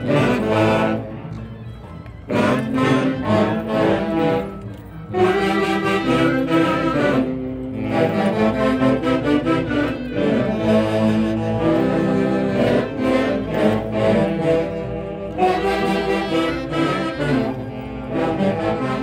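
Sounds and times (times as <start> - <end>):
band with saxophones playing: 0.0 - 19.0.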